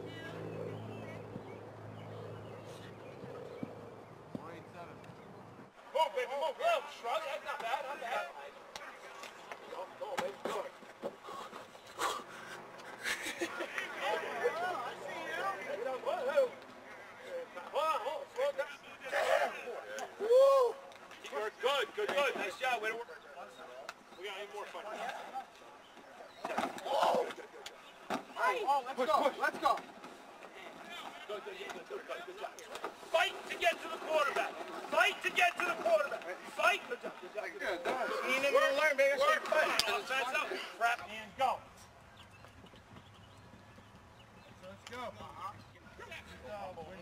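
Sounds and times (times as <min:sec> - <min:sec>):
indistinct talk and calls: 0:00.0 - 0:47.0.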